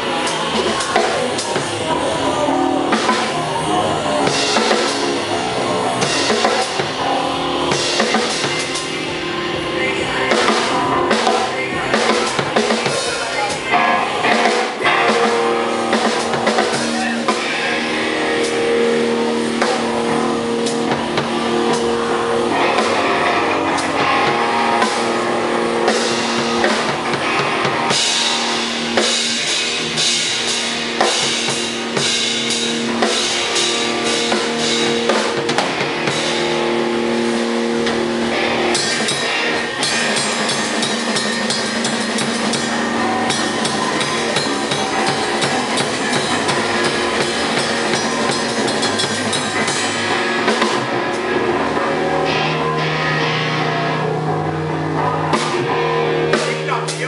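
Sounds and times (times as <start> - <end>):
drum and cymbal hits: 0.0 - 57.0
electric guitar sustaining notes: 0.0 - 57.0.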